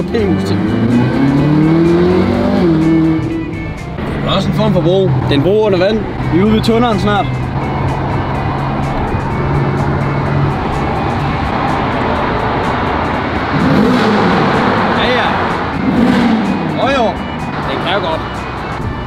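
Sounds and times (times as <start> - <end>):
car engine revving in tunnel: 0.2 - 18.6.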